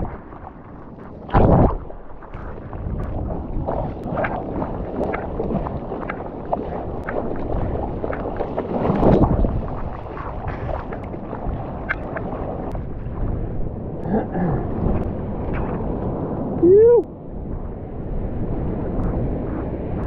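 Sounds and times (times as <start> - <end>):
surge of water: 0.0 - 20.0
water splashing and sloshing: 0.0 - 20.0
hand strokes in water: 2.3 - 12.7.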